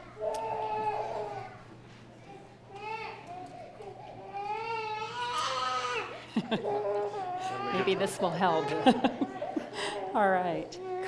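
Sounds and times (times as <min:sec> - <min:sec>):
infant crying: 0:00.3 - 0:01.6, 0:02.8 - 0:11.0.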